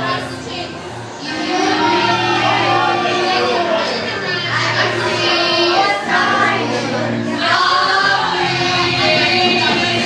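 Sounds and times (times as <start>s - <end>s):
crowd voices: 0.0s - 10.0s
loud backing track: 0.0s - 10.0s
women singing into a microphone: 0.0s - 10.0s.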